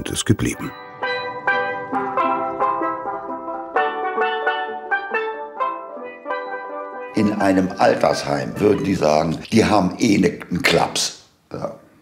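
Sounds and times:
steel pans playing a melody: 0.7 - 9.1.

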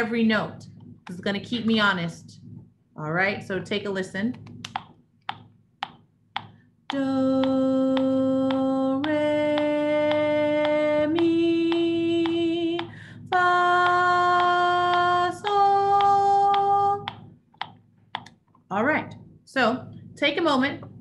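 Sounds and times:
person speaking: 0.0 - 5.0
metronome clicking: 4.6 - 13.0
woman singing scale: 6.9 - 17.4.

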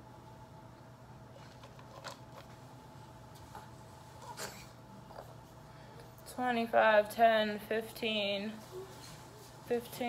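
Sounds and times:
faint steady hum: 0.0 - 10.0.

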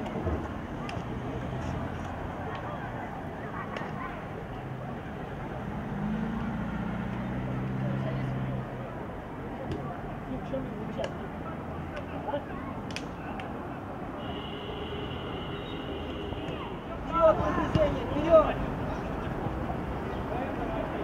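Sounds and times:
distant shouts: 13.1 - 21.0.

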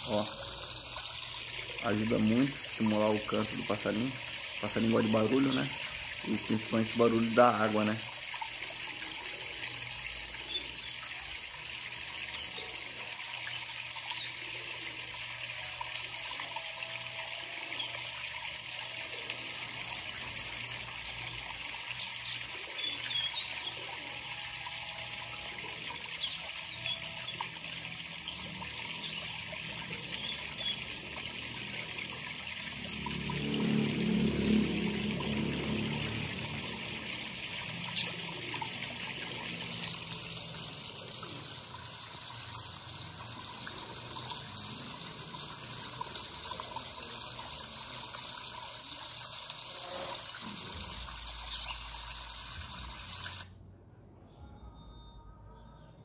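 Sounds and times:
waterfall trickling and splashing: 0.0 - 53.5.

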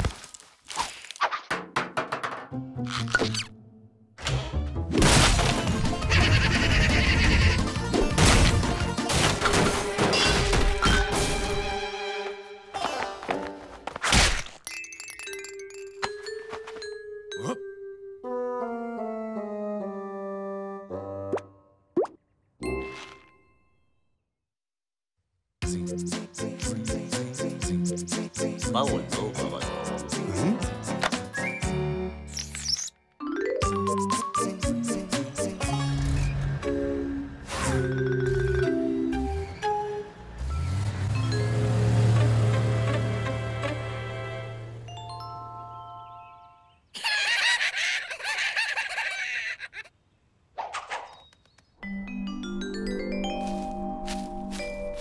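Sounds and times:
cartoon voices cackling: 6.0 - 7.7, 47.0 - 49.9
cartoon music with held notes: 14.8 - 21.9, 25.6 - 32.3, 33.2 - 46.9, 51.8 - 55.0.

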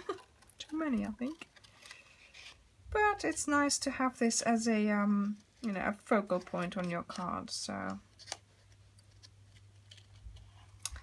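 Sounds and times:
paper handling: 0.0 - 2.6.

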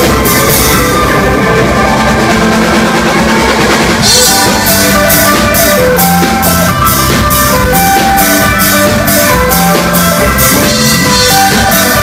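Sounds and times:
bass guitar: 0.0 - 12.0
drum kit: 0.0 - 12.0
electric guitar solo: 0.0 - 12.0.

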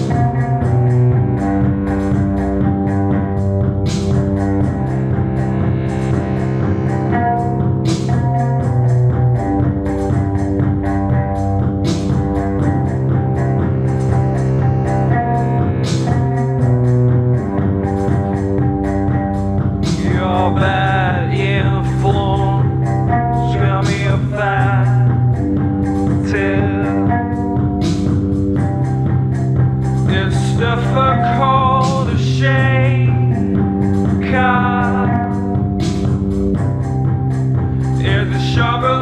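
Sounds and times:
drum machine ticking: 0.0 - 39.0
held keyboard notes: 0.0 - 39.0
repeating bass line: 0.0 - 39.0
crash cymbal: 3.9 - 10.1.

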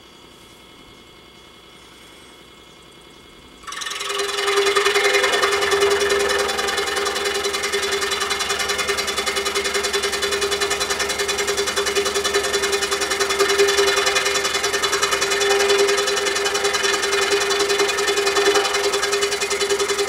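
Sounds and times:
scroll saw cutting wood: 3.6 - 20.0.

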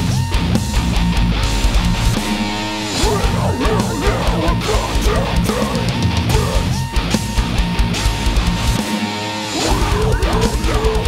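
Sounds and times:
distorted electric guitars: 0.0 - 11.0
drums: 0.0 - 11.0.

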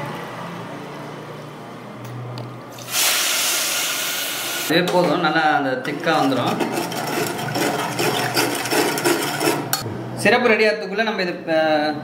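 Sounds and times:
spoon scraping metal saucepan: 5.8 - 9.8.

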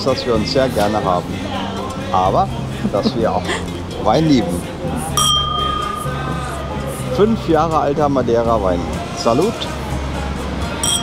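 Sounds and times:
wine glasses clinking: 5.2 - 7.2.

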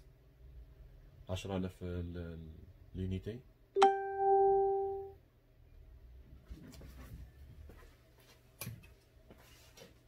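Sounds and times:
pitched ringing tone: 3.8 - 5.2.

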